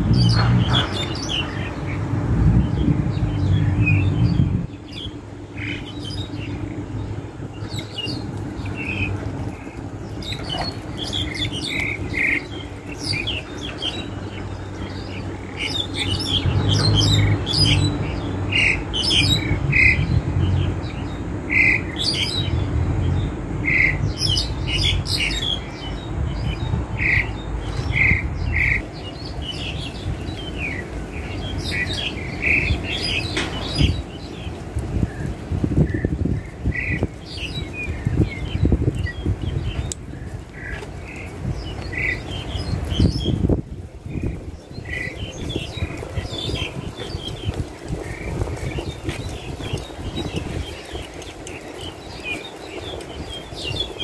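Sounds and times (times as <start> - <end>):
low background rumble: 0.0 - 54.0
starling squawks and chirps: 7.6 - 20.1.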